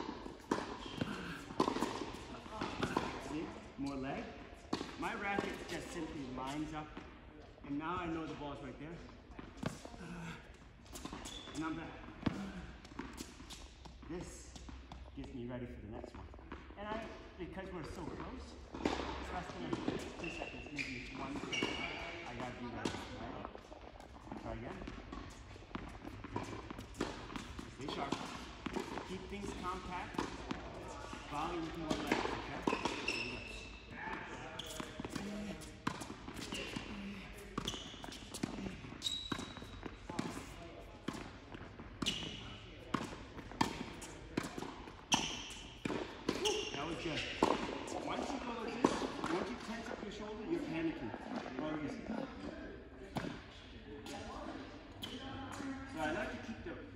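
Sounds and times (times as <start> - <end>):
balls bouncing on hard court: 0.0 - 7.1, 9.4 - 15.1, 16.1 - 50.0
tennis balls struck by rackets: 0.0 - 7.1, 17.6 - 49.8.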